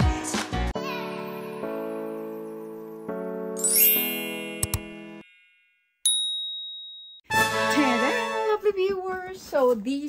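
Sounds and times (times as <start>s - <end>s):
bright ding chime: 3.6s - 7.3s.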